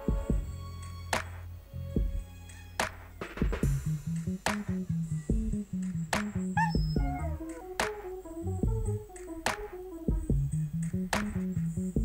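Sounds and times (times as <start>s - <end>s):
music with drum beat and bass: 0.0s - 12.0s.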